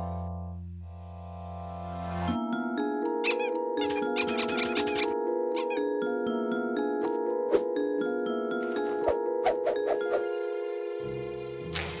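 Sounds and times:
cartoon background music: 0:02.3 - 0:12.0
high wavering cartoon squeaks: 0:03.2 - 0:05.9.

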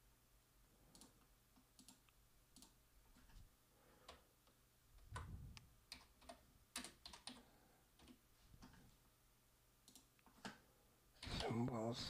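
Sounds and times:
faint keyboard typing: 0:00.8 - 0:09.0, 0:09.8 - 0:11.8.

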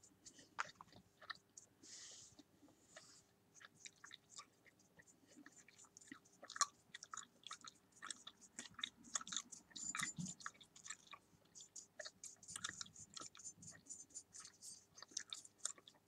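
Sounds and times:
gum chewing wet smacks: 0:00.2 - 0:01.7, 0:02.4 - 0:16.0.

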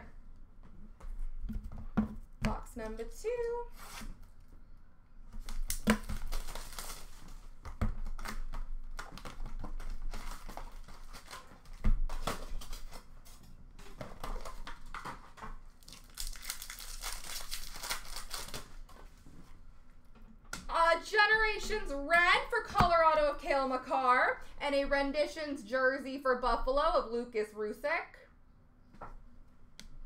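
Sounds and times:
packaging tearing and crumpling: 0:05.4 - 0:13.0, 0:15.7 - 0:18.9.

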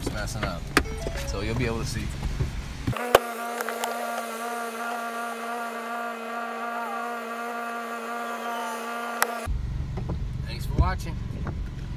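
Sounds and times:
car cabin hum: 0:00.0 - 0:11.7
car door shutting: 0:00.1 - 0:04.3.

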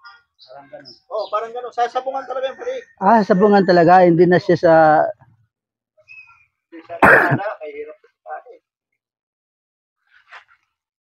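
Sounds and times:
man clearing throat: 0:07.0 - 0:07.5.

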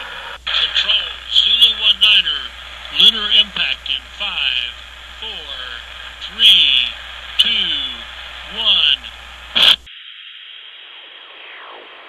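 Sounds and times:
radio static: 0:00.0 - 0:12.0
man's voice over radio: 0:00.4 - 0:09.8.

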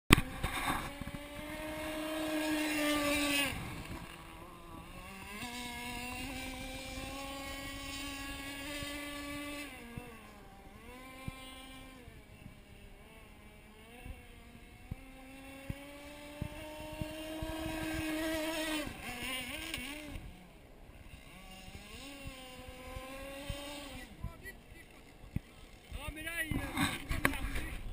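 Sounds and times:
model boat engine running: 0:00.1 - 0:27.9.

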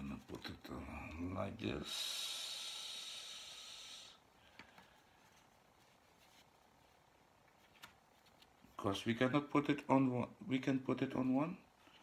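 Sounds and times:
steady hiss: 0:00.0 - 0:09.3.

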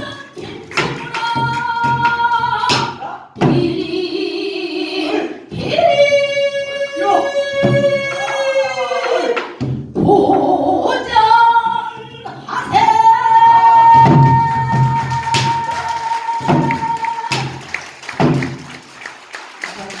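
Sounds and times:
woman singing: 0:00.0 - 0:09.4, 0:10.0 - 0:17.6.

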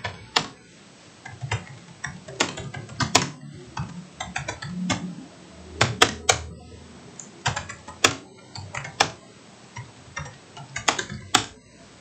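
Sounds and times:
computer keyboard typing: 0:00.0 - 0:00.6, 0:01.2 - 0:05.2, 0:05.8 - 0:11.7.

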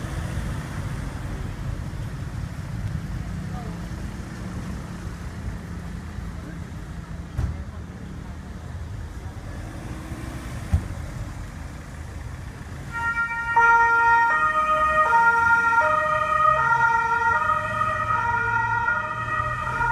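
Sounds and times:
two-tone police siren: 0:12.9 - 0:19.9.

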